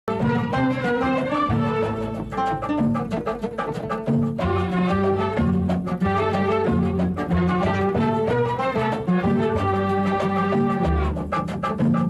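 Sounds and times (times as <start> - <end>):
oud plucked quickly: 0.1 - 12.0.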